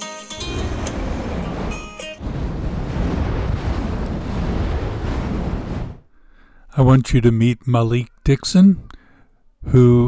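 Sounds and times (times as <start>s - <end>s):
steady rushing noise: 0.4s - 6.2s.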